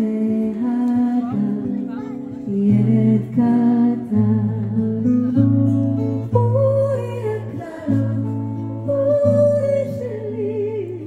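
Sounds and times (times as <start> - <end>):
acoustic guitar: 0.0 - 11.0
woman singing long held notes: 2.5 - 5.4, 6.1 - 11.0.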